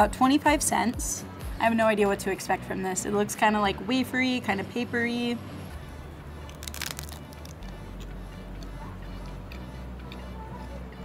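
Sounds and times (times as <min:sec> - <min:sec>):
background music: 0:00.0 - 0:11.0
wafer crunching bite: 0:06.4 - 0:08.7.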